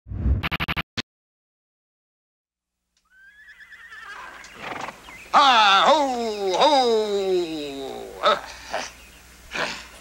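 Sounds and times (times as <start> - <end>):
horse whinnying: 3.0 - 5.0.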